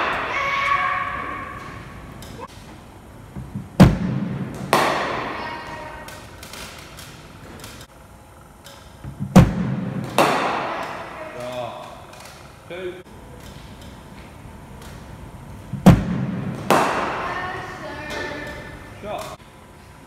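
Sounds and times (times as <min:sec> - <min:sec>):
cricket bat striking ball: 0:03.8 - 0:05.4, 0:09.3 - 0:11.0, 0:15.8 - 0:17.3.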